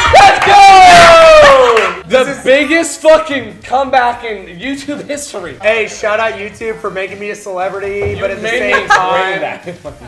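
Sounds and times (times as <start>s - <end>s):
friends yelling in celebration: 0.0s - 2.0s.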